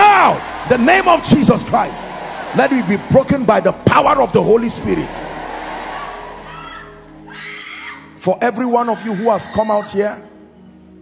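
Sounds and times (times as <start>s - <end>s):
soft music of held chords: 0.0s - 11.0s.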